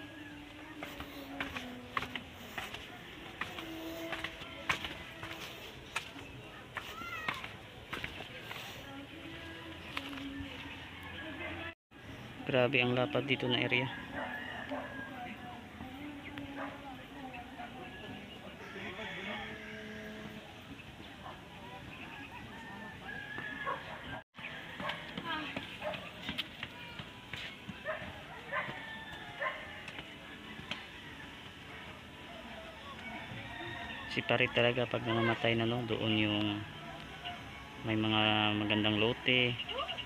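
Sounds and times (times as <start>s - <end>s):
footsteps scuffing on concrete steps: 0.4s - 10.8s, 24.7s - 30.9s
rooster crowing: 13.8s - 15.6s, 18.6s - 20.5s, 22.2s - 25.2s, 28.4s - 31.6s, 32.4s - 35.5s.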